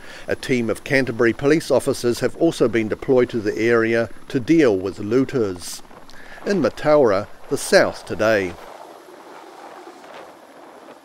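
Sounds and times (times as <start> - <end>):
helicopter rotor and engine: 0.1 - 9.6.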